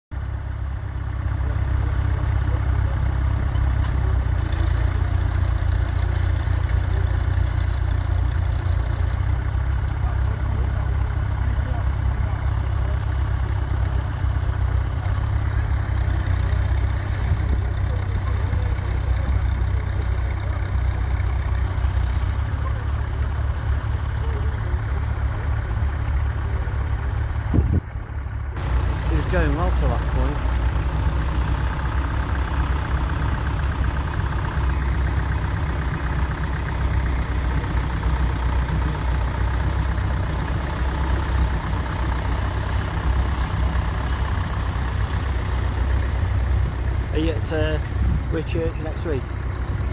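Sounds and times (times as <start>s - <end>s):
tractor engine running under load: 0.1s - 49.9s.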